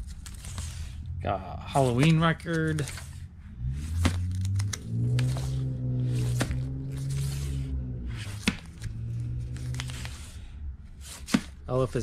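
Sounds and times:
record sleeves sliding: 3.8s - 10.4s.

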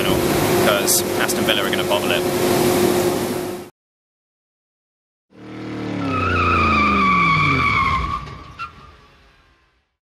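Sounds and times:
car engine: 5.3s - 10.0s
car tyres squealing in a skid: 6.0s - 9.1s.

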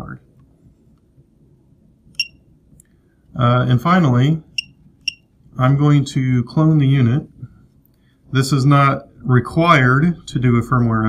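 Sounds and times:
short high beep: 2.2s - 2.4s.

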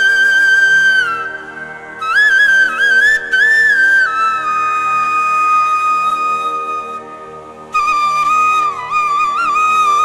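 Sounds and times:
ornamented flute melody: 0.0s - 10.0s.

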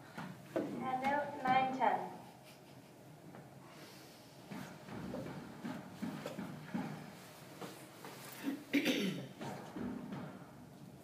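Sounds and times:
woman speaking: 0.7s - 2.2s.

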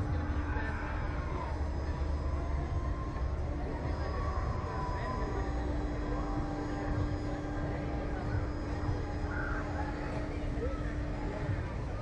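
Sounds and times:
ride machinery humming: 0.0s - 12.0s.

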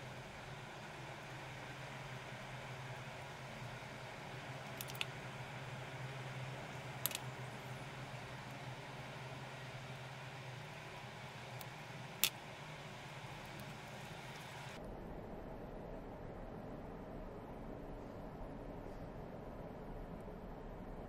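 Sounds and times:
steady low hiss and hum: 0.0s - 21.0s.

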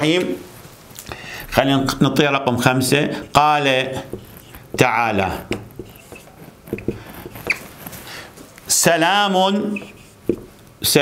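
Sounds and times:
marker squeaking on whiteboard: 3.0s - 10.6s
marker tip tapping board: 4.1s - 7.6s, 9.8s - 10.5s.

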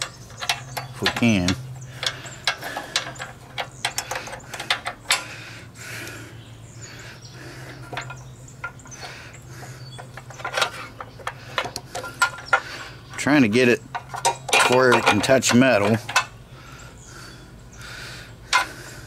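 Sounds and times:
light metal clicks and clinks: 0.0s - 5.3s
steady low hum: 0.0s - 19.0s.

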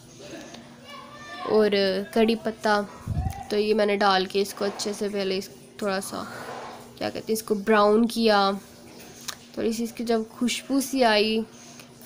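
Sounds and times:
woman narrating: 1.5s - 8.7s, 9.5s - 11.5s.

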